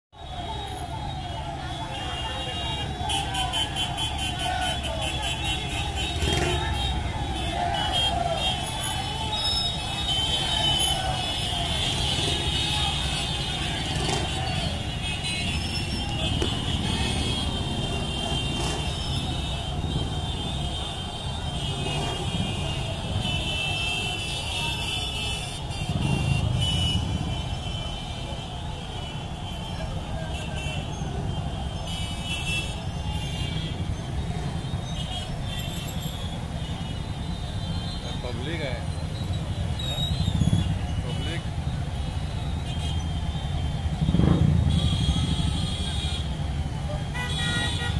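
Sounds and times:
horns sounding: 0.3 - 47.9
motorcycles riding past: 4.8 - 24.0, 25.1 - 28.0, 43.0 - 47.2.

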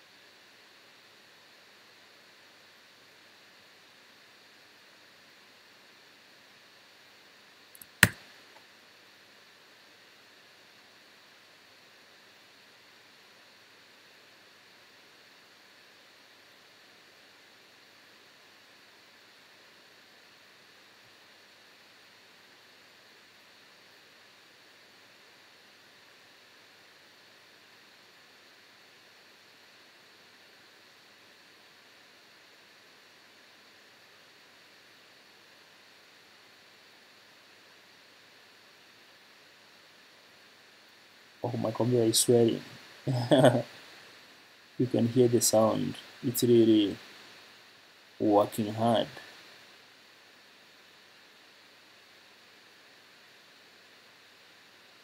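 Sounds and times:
computer cooling fan hiss: 0.0 - 55.0.

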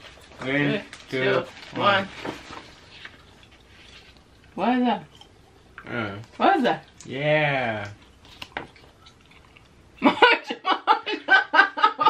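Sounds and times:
paper rustling: 0.0 - 4.2.

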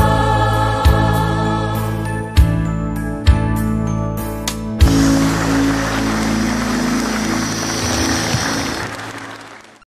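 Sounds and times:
audience applauding: 4.9 - 9.9.

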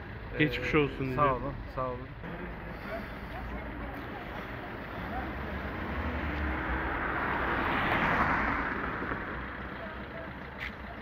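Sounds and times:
car passing: 0.0 - 10.7.

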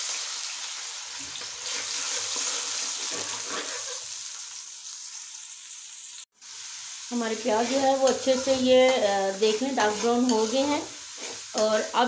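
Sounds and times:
onion paste sizzling in oil: 0.0 - 12.0.

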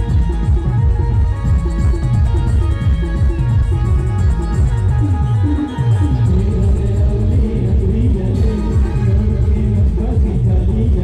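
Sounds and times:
band music with heavy bass: 0.0 - 11.0.

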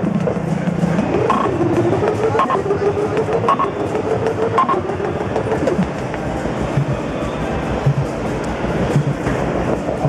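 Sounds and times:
noisy hi-hat ticks: 0.0 - 7.1, 7.7 - 10.0
synthesizer sequenced pattern: 0.0 - 10.0
kick drum thumps: 6.7 - 7.0, 7.8 - 8.2.

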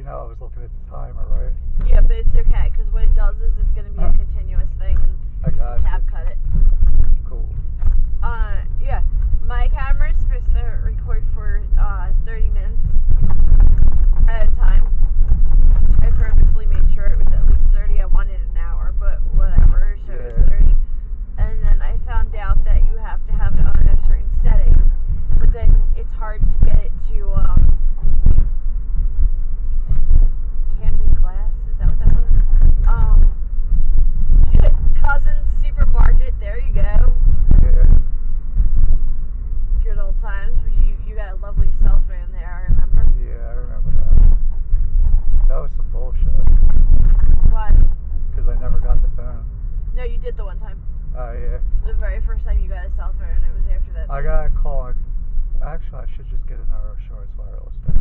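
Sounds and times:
people talking: 0.0 - 6.4, 7.2 - 7.5, 8.2 - 12.9, 14.2 - 14.8, 15.9 - 20.8, 21.4 - 24.8, 25.4 - 27.8, 30.7 - 33.3, 34.5 - 37.9, 39.8 - 44.2, 45.5 - 46.5, 47.5 - 47.8, 48.4 - 49.4, 50.0 - 55.0, 55.6 - 57.9
road and engine rumble: 0.0 - 58.0.

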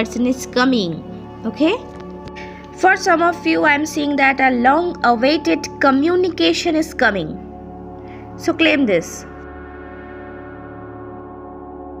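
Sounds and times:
sustained bell-like music tones: 9.3 - 12.0.

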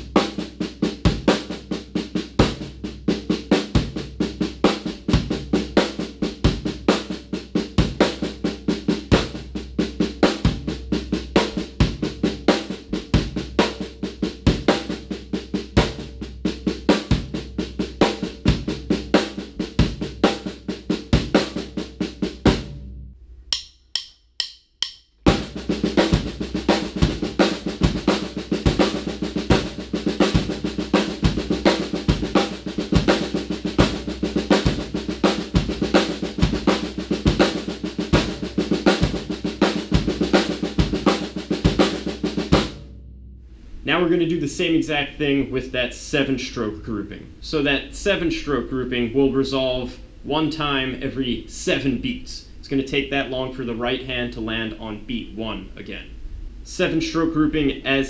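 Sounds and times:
snare drum strokes: 0.0 - 22.8, 23.5 - 42.9
bass drum notes: 0.0 - 45.7.

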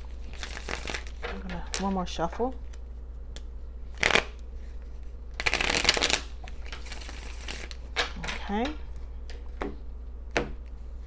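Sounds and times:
cards being shuffled: 0.0 - 1.9, 2.6 - 8.4.

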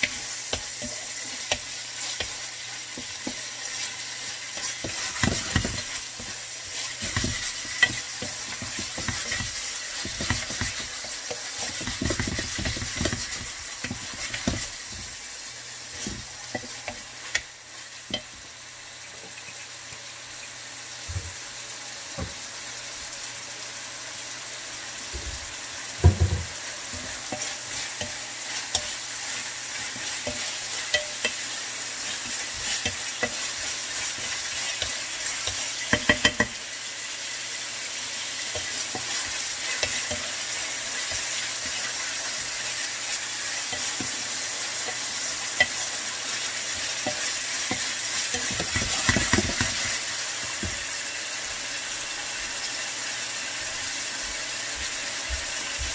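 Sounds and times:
wooden spatula stirring and scraping: 0.0 - 17.4, 26.5 - 36.6, 38.2 - 50.8
meat sizzling in a frying pan: 0.0 - 55.9
spatula knocking against pan: 6.8 - 15.1, 32.6 - 36.6, 46.8 - 50.0.

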